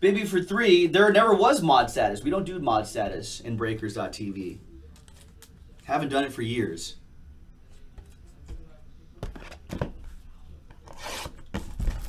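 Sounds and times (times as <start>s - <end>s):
rasping scrape: 10.9s - 11.4s.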